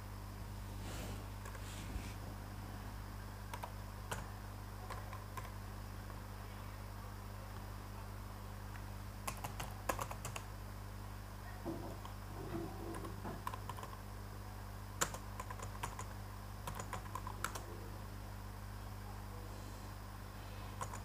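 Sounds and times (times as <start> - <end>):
steady low hum: 0.0 - 21.0
computer keyboard typing: 3.5 - 4.3, 4.9 - 5.6, 9.2 - 10.5, 12.9 - 14.0, 15.0 - 17.7, 20.8 - 21.0.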